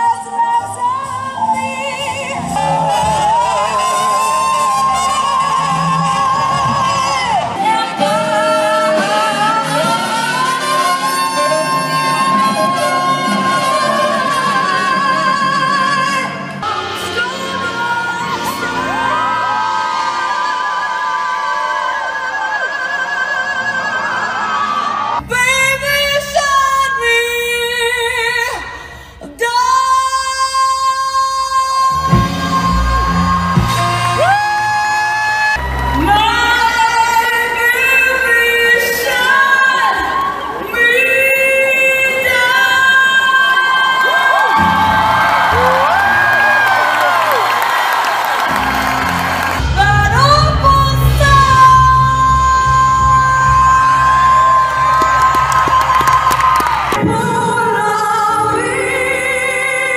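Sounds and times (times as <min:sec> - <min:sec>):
jazz band playing: 0:00.1 - 0:15.5, 0:31.9 - 0:34.9, 0:44.9 - 0:56.6
audience cheering and whooping: 0:33.6 - 0:37.9, 0:42.6 - 0:50.4, 0:52.1 - 0:57.3
woman singing long high note: 0:49.7 - 0:56.3.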